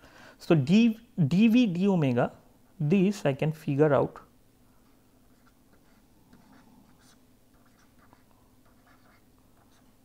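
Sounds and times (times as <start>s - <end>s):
low room hum: 0.0s - 10.0s
stylus writing on a tablet: 5.3s - 10.0s.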